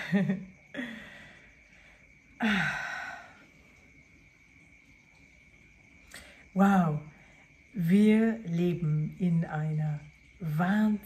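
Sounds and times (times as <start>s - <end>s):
woman laughing sigh: 0.0s - 1.5s.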